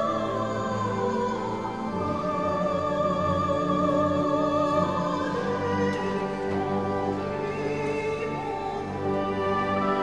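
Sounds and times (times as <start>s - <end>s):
orchestra playing classical music: 0.0s - 10.0s.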